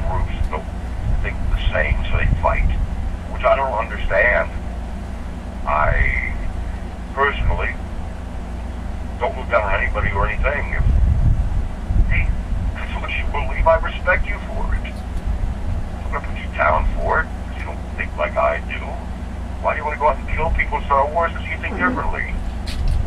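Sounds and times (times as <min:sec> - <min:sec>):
steady low hum: 0:00.0 - 0:23.0
voice talking through telephone: 0:01.2 - 0:02.7, 0:03.4 - 0:04.5, 0:05.7 - 0:06.4, 0:07.2 - 0:07.8, 0:09.2 - 0:10.8, 0:12.1 - 0:15.0, 0:16.1 - 0:22.4.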